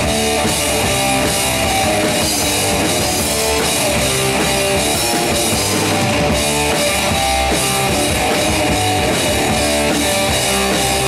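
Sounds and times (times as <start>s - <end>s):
drum kit: 0.0s - 11.0s
electric guitar chords: 0.0s - 11.0s.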